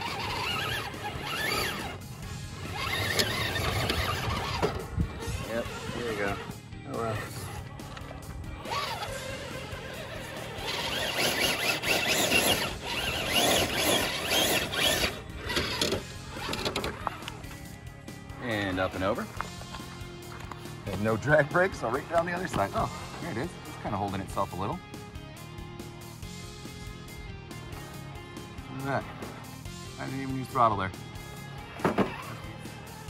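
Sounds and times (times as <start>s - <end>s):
background music: 0.0s - 33.0s.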